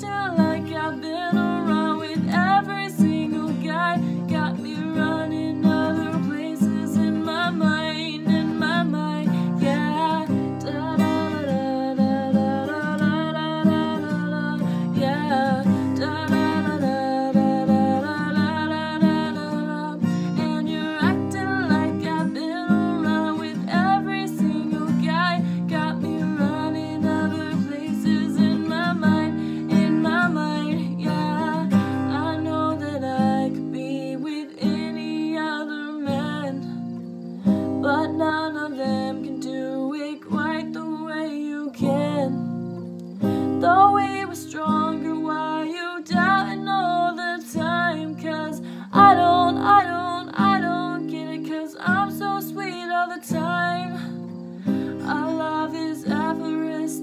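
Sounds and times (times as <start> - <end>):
acoustic guitar strumming: 0.0 - 57.0
woman singing: 0.0 - 57.0.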